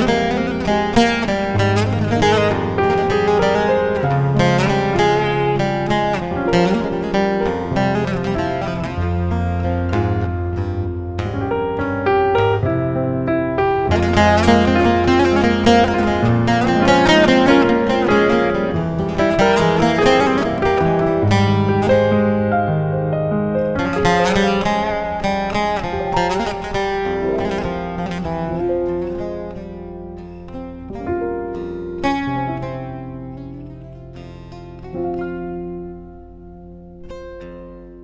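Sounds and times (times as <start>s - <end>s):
piano chords and bass: 0.0s - 38.0s
plucked long-necked lute: 0.0s - 38.0s.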